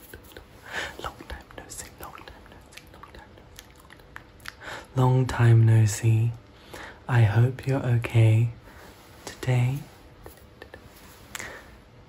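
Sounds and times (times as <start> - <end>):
man whispering: 0.0 - 3.6, 4.5 - 11.7.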